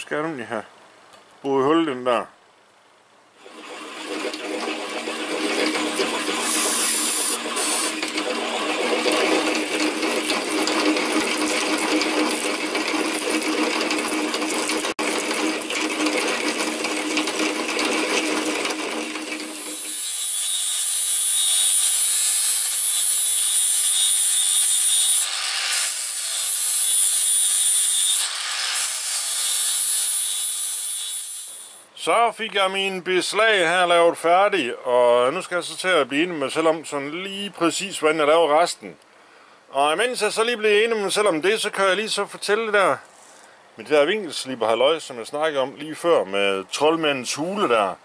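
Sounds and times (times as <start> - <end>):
angle grinder grinding metal: 3.4 - 31.8
drill press drilling metal: 3.4 - 31.8
cutting fluid spray hissing: 5.8 - 8.1, 24.1 - 31.8.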